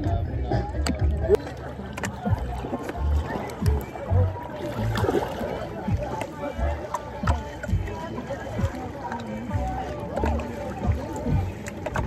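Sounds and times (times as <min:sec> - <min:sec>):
background voices: 0:00.0 - 0:12.0
waves slapping boat hull: 0:00.0 - 0:12.0.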